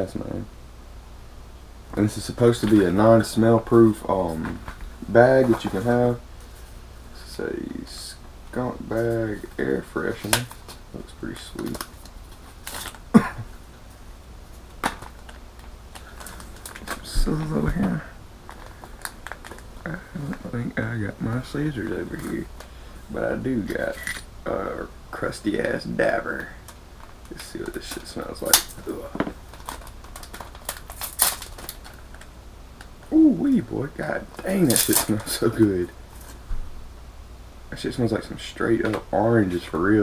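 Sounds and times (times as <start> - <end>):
packet rustling: 8.9 - 13.4, 14.6 - 24.2, 26.9 - 33.1
throaty cough-like sound: 13.1 - 13.5.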